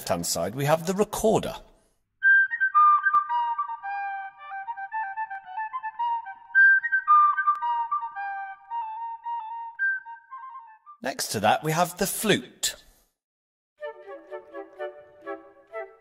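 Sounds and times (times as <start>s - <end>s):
recorder melody: 2.2s - 11.0s, 13.8s - 16.0s.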